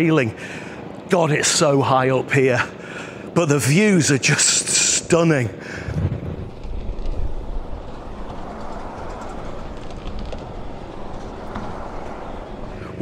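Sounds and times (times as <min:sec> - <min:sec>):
road traffic rumble: 0:00.0 - 0:13.0.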